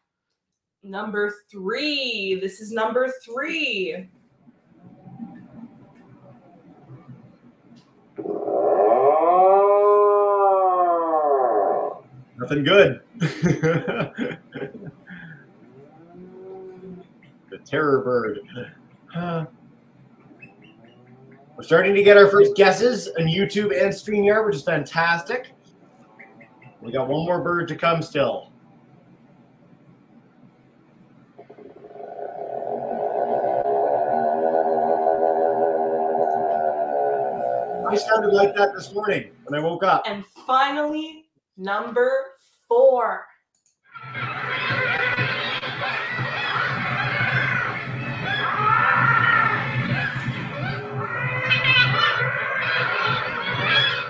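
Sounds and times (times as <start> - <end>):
droning seabird call: 31.4 - 38.4.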